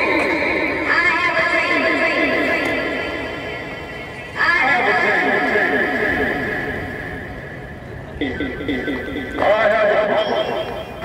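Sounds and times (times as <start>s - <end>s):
warbling electronic tone: 8.1s - 11.0s.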